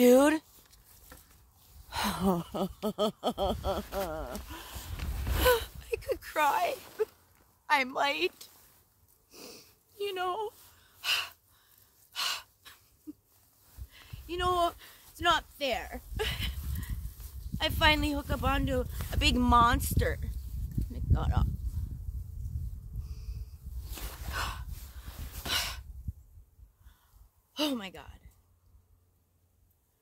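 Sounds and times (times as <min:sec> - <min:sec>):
wind rumble on microphone: 0:03.3 - 0:06.3, 0:15.4 - 0:26.9
woman breathing heavily: 0:04.4 - 0:05.7, 0:10.6 - 0:13.0.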